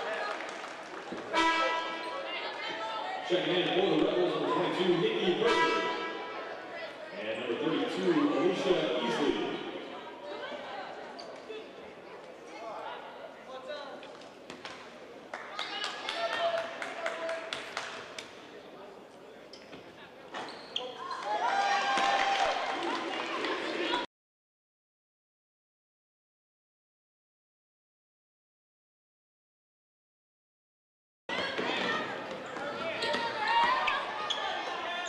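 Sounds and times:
voices of players and crowd: 0.0s - 24.1s, 31.3s - 35.0s
arena ambience: 1.3s - 15.3s.

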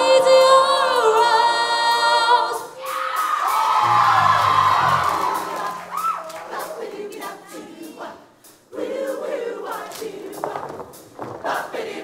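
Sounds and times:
choir singing together: 0.0s - 2.9s, 3.6s - 12.0s.

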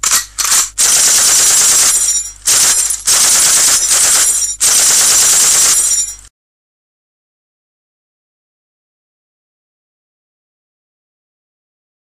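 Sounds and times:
machine-gun fire: 0.0s - 6.2s.

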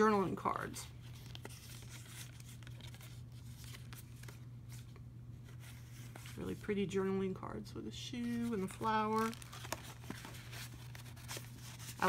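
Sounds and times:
steady low hum: 0.0s - 12.0s
paper cards shuffling: 0.9s - 6.6s, 8.2s - 12.0s.

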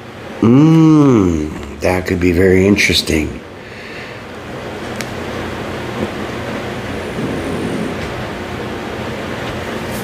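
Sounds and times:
low rumbling noise: 3.4s - 9.9s.

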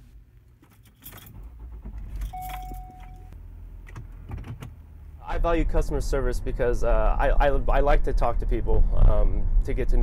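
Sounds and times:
keys jangling: 0.6s - 1.4s, 2.1s - 3.2s
steady beep: 2.4s - 3.4s.

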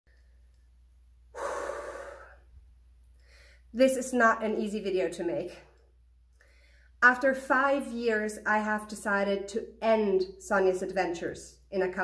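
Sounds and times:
woman sighing: 1.4s - 2.4s.

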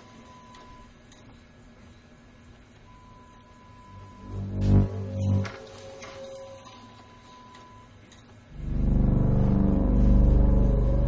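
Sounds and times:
loud low rumbling drone: 4.1s - 5.9s, 8.5s - 11.0s.

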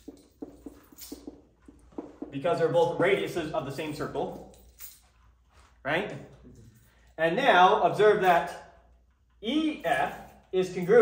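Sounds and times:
marker squeaking on whiteboard: 0.0s - 2.6s.

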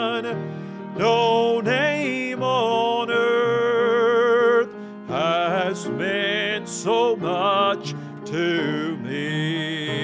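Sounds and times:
man singing a hymn: 0.0s - 10.0s
piano accompaniment: 0.0s - 10.0s.

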